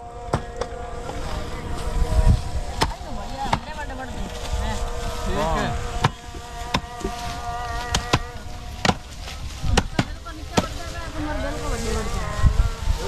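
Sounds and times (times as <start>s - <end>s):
low voices: 0.0s - 13.0s
hand tools chopping stalks: 2.6s - 4.6s, 5.3s - 11.2s.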